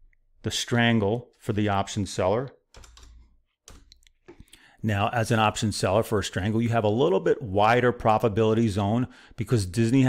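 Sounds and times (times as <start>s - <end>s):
keyboard and mouse clicks: 2.8s - 4.6s.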